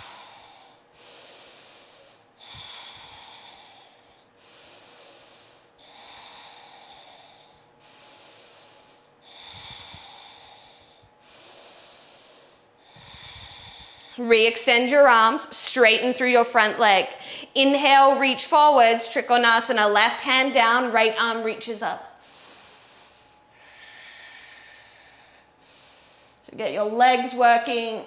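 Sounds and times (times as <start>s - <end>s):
woman breathing slowly: 0.0s - 15.8s, 17.1s - 18.6s, 22.0s - 26.5s.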